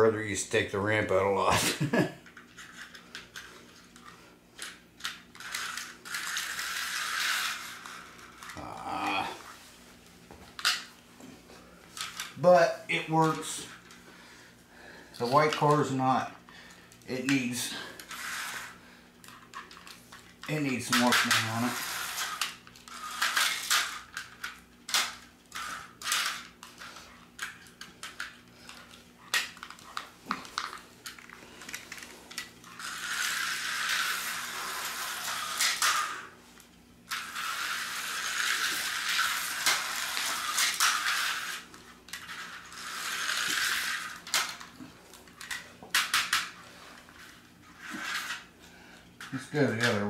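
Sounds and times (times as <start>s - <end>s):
slot car motor buzzing: 32.7s - 36.3s, 37.1s - 44.1s.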